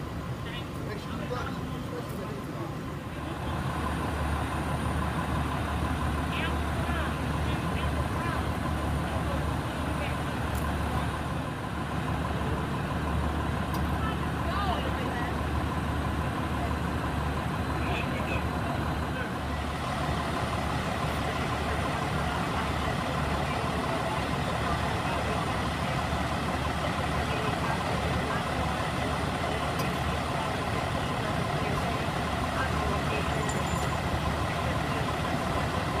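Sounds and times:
fire engines idling: 0.0s - 36.0s.

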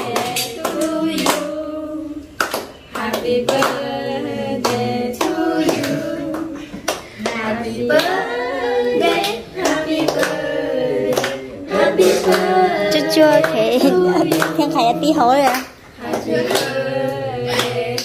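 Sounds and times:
people clapping along: 0.0s - 18.0s
young people singing together: 0.0s - 18.0s.

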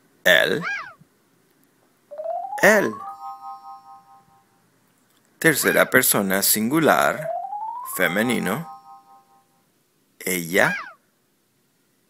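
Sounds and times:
electronic chime: 2.1s - 4.6s, 7.1s - 9.6s.

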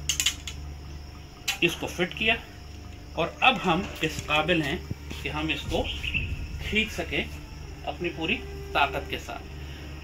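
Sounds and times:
arrow clicking against bowstring: 0.0s - 0.7s.

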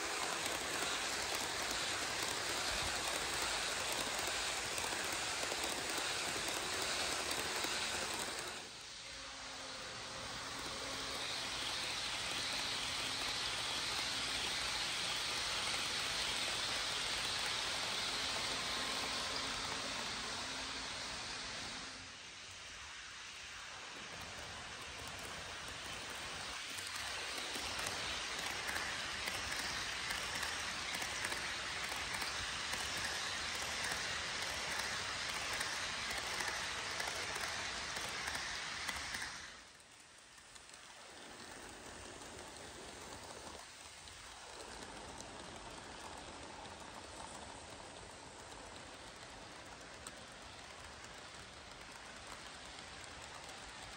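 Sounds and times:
model train wheels on rails: 0.0s - 53.9s.

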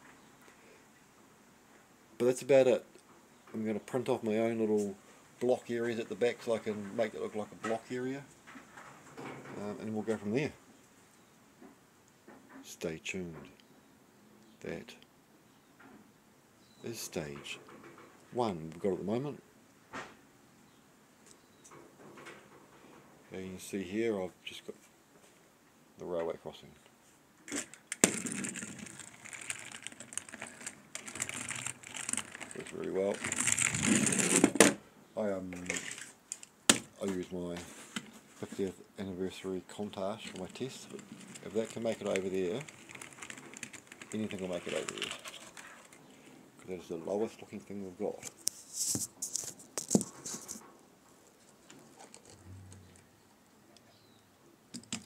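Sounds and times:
toy vehicle rattling on cardboard: 27.5s - 34.8s, 35.5s - 36.9s, 40.2s - 46.2s
faint low hum: 52.3s - 54.3s.

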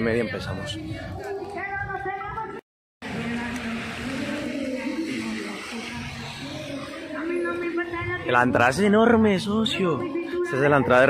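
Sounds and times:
steady outdoor hiss: 3.0s - 10.2s.

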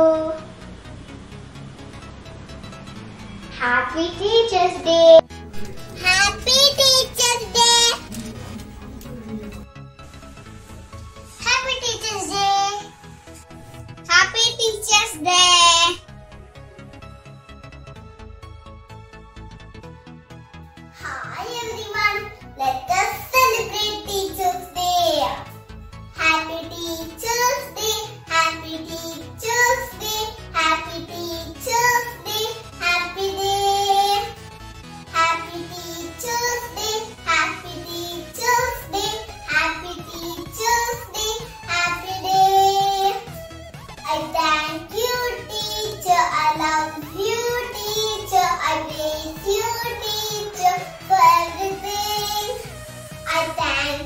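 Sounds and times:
girl singing: 0.0s - 0.5s, 3.6s - 5.2s, 6.0s - 8.2s, 11.4s - 13.0s, 14.1s - 16.0s, 21.0s - 25.5s, 26.2s - 34.4s, 35.1s - 43.4s, 44.0s - 54.0s.

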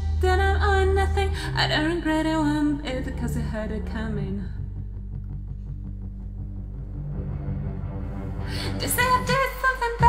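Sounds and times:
deep synth bass: 0.0s - 10.0s.

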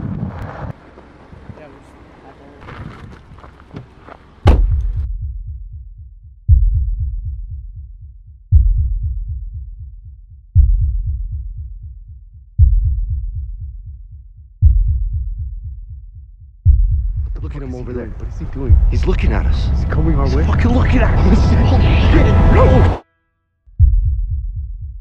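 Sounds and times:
deep cinematic booms: 4.4s - 5.8s, 6.5s - 7.8s, 16.6s - 23.0s, 23.7s - 25.0s.

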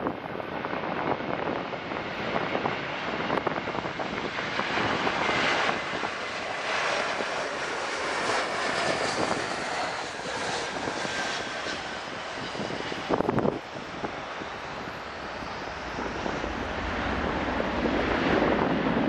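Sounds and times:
jet engines roaring: 0.0s - 19.0s
wind buffeting microphone: 0.0s - 19.0s.

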